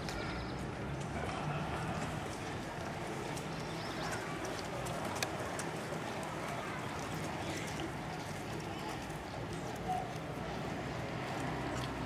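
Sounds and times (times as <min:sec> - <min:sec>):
horse hooves clip-clopping: 0:01.0 - 0:12.0.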